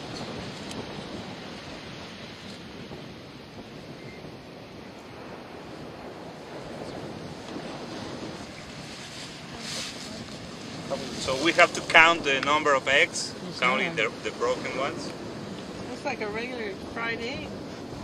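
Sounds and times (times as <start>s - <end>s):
ocean surf on a beach: 0.0s - 18.0s
wind buffeting microphone: 0.0s - 18.0s.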